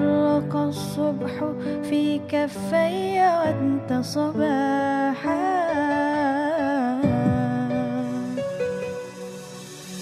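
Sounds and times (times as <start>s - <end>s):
woman singing wordless vocal run: 0.0s - 8.8s
sustained musical accompaniment: 0.0s - 10.0s.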